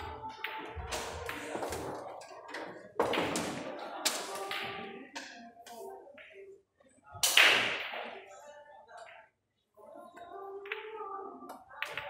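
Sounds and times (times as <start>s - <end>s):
billiard balls clacking: 0.0s - 5.5s
murmur of voices: 0.0s - 12.0s
faint clicks of balls: 10.6s - 12.0s.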